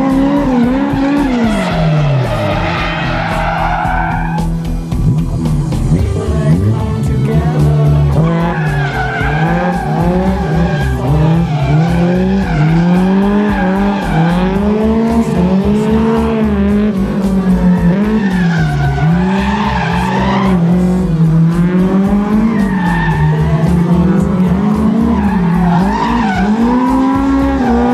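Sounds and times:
car engine revving: 0.0s - 27.9s
tyre squeal: 0.2s - 4.5s, 8.3s - 15.1s, 17.6s - 20.9s, 22.1s - 27.9s.

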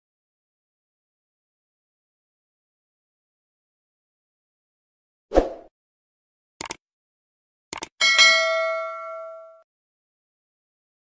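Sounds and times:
quick double clicks: 6.6s - 6.8s, 7.7s - 7.9s
bell-like notification ding: 8.0s - 9.6s.

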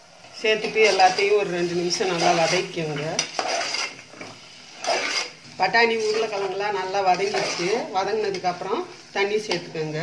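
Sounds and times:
spoon scraping a pot: 0.6s - 8.4s.

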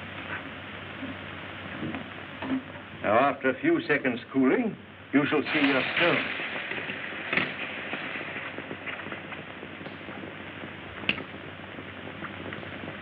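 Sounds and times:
steady hiss: 0.0s - 13.0s
faint crackles: 5.1s - 13.0s.

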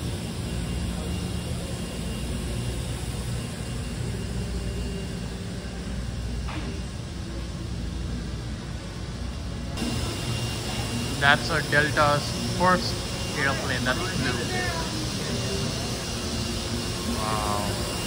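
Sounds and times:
ventilation and machinery hum: 0.0s - 18.0s.

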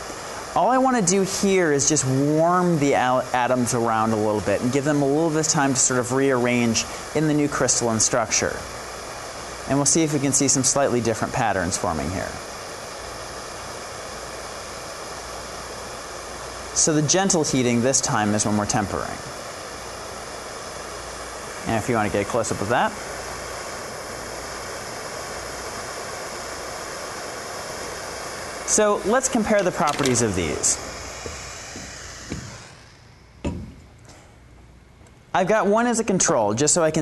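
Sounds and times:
gas torch hissing: 0.0s - 35.5s.

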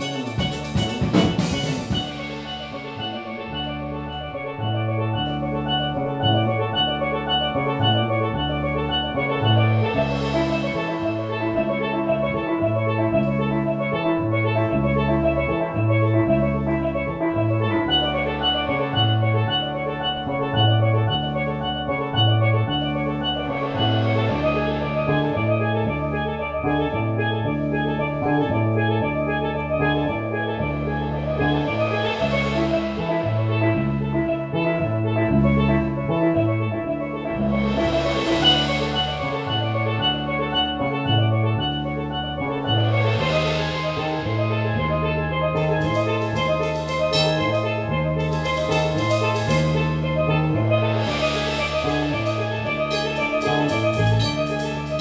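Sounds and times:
bass line: 0.0s - 55.0s
drum kit played with mallets: 0.0s - 55.0s
steelpan melody: 0.0s - 55.0s
cymbal wash: 37.6s - 41.5s.

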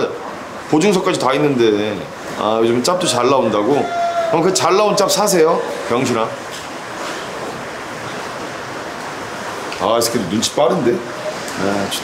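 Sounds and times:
steady rushing hiss: 0.0s - 12.0s.

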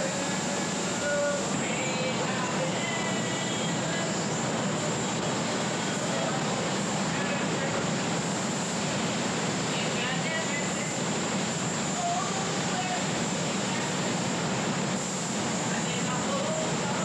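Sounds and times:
booth air rushing: 0.0s - 17.0s
spray guns hissing: 0.0s - 17.0s.

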